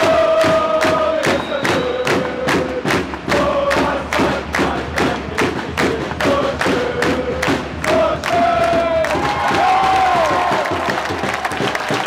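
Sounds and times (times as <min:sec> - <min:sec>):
crowd chanting: 0:00.0 - 0:10.7
crowd beating a fast rhythm: 0:00.0 - 0:12.0.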